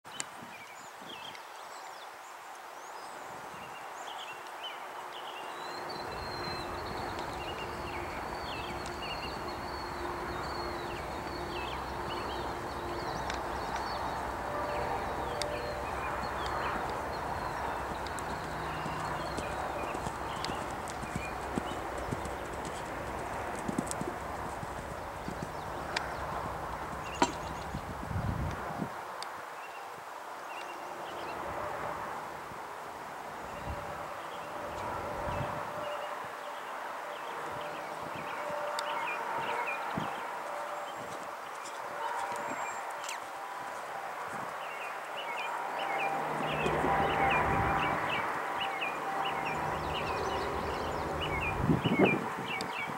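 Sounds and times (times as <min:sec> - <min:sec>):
pony hoofbeats on sand: 0:13.0 - 0:28.0.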